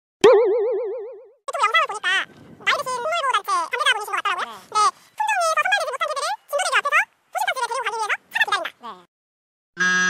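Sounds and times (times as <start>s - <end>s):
cartoon boing: 0.2s - 1.4s.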